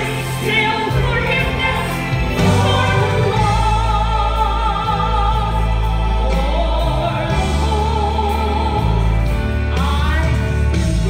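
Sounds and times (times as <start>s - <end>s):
woman singing gospel song: 0.0s - 11.0s.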